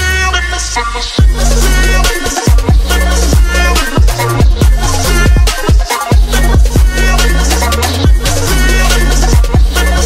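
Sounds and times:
electronic music with drum beat: 0.0s - 10.0s.

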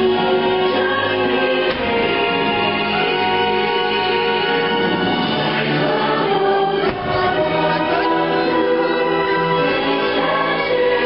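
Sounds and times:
choir singing over music: 0.0s - 11.0s.

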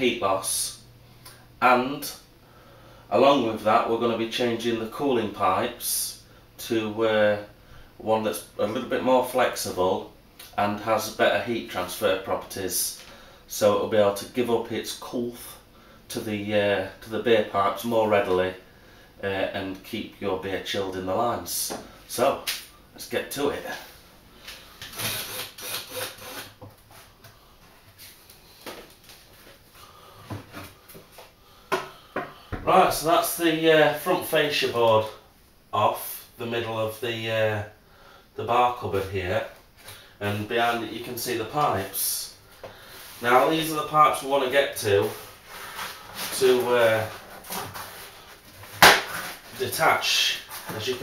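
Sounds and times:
wood scraping and rubbing: 45.0s - 49.8s.

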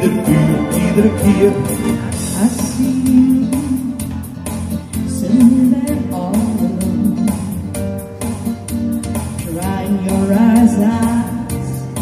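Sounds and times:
live dance band music: 0.0s - 12.0s.

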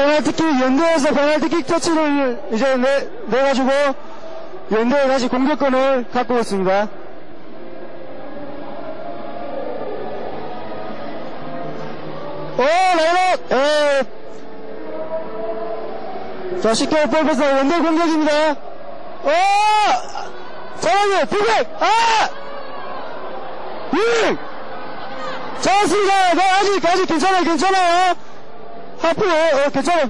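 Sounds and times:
stadium crowd din: 0.0s - 30.0s.

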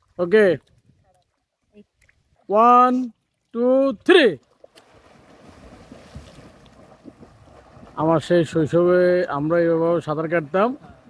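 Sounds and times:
person swimming in water: 4.5s - 8.0s.

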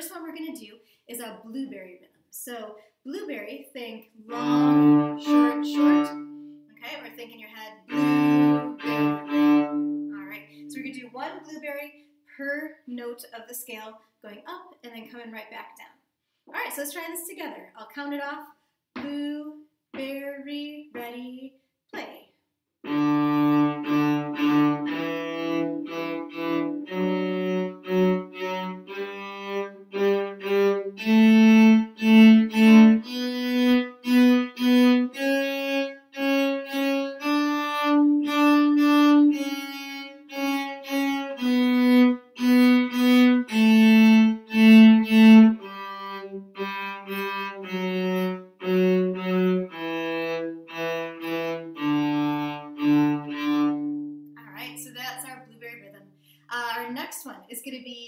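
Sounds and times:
cello playing a scale: 4.2s - 11.1s, 22.8s - 55.4s.

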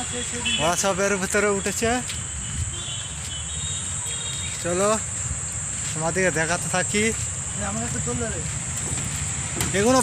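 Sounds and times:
high-pitched insect chorus: 0.0s - 10.0s
man speaking: 9.6s - 10.0s.

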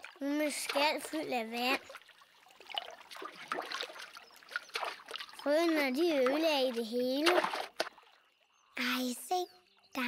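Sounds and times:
water trickling and sloshing: 0.0s - 9.9s.

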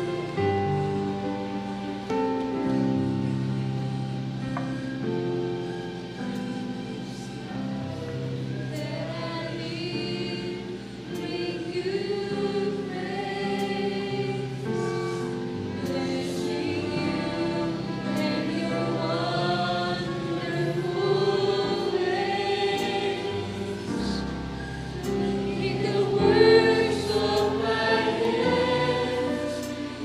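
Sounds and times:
mixed choir singing gospel song: 0.0s - 3.3s, 7.0s - 30.0s.

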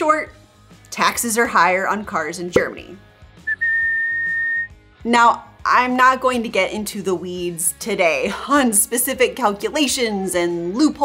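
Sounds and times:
high whistled note: 3.5s - 4.7s.

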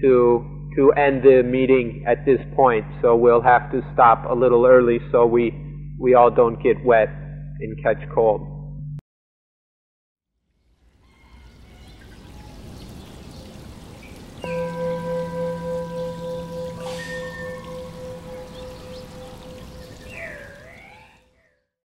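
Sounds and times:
water trickling: 10.5s - 21.2s
bell ringing: 14.4s - 20.8s
short warbling whistle: 16.4s - 21.4s.

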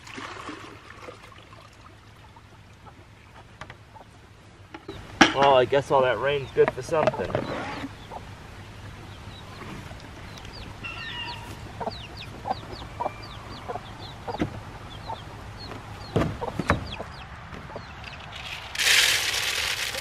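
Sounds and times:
chicks peeping: 6.2s - 18.4s
plastic feeder being handled: 18.2s - 20.0s.

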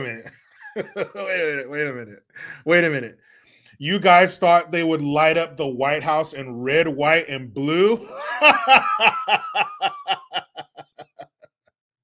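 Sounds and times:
man chuckling: 0.2s - 1.7s, 8.0s - 11.6s.

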